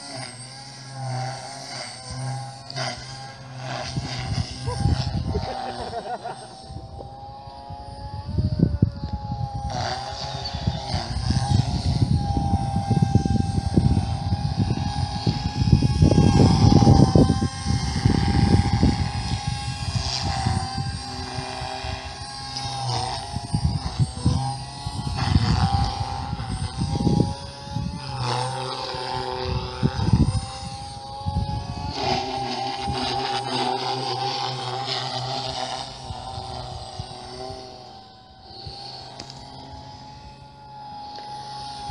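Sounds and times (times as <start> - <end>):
rc helicopter motor whine: 0.0 - 41.9.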